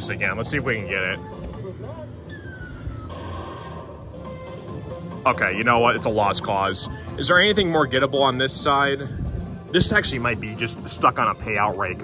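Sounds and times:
falling electronic tone: 2.3 - 4.1.

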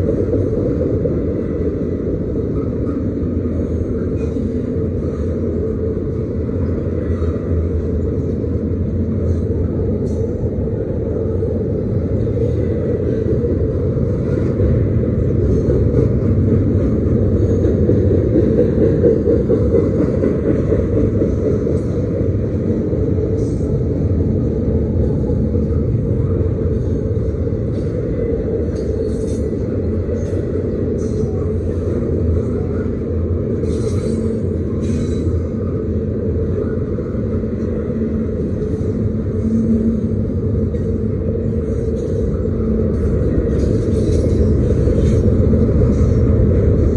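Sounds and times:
freight train wheels rumbling: 0.0 - 46.9.

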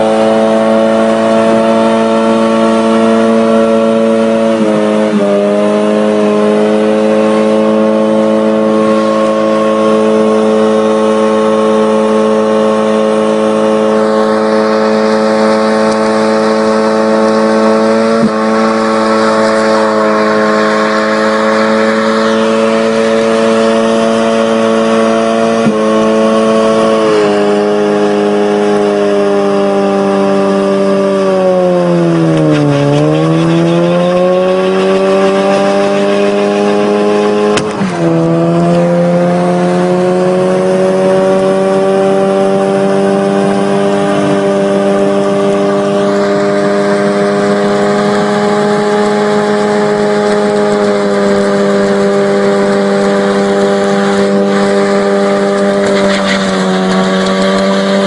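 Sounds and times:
car engine at high revs: 0.0 - 58.0.

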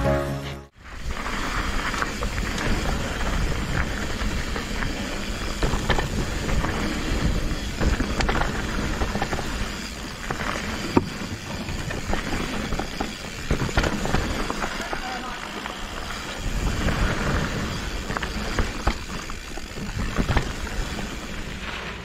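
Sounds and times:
bike tyres on dirt trail: 0.7 - 22.0
bike rattling clicks: 1.2 - 21.9.

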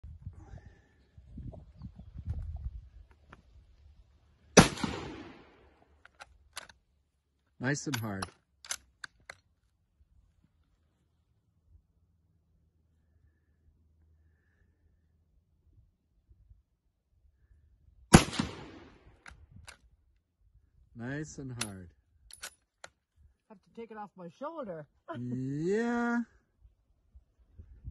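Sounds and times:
rifle shot with echo: 4.6 - 5.6, 18.1 - 19.1.

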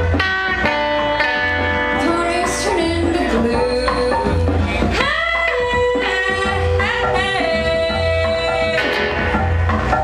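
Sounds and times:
drum kit: 0.0 - 10.0
electric guitar: 0.0 - 10.0
woman singing long notes: 2.0 - 9.1.

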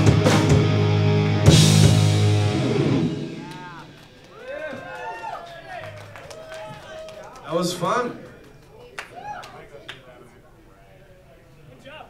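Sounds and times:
rock band final chord: 0.0 - 4.1
audience cheering: 2.3 - 9.8
audience whoops and shouts: 3.2 - 7.4, 9.1 - 9.6.

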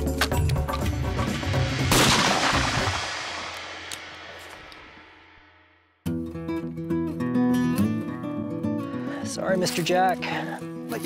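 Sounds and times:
shotgun shot with echo: 1.8 - 5.3
guitar music: 6.0 - 11.0.

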